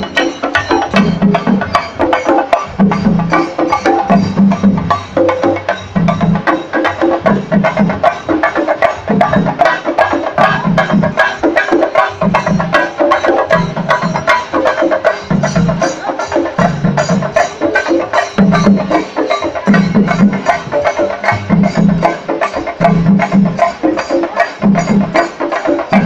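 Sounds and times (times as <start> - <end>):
deeper drum beats: 0.0 - 26.0
drums beaten with sticks: 0.0 - 26.0
hand cymbals ringing: 0.0 - 26.0.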